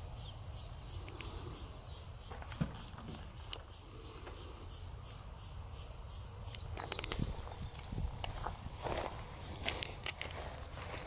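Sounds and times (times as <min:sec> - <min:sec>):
insect chirping: 0:00.0 - 0:11.0.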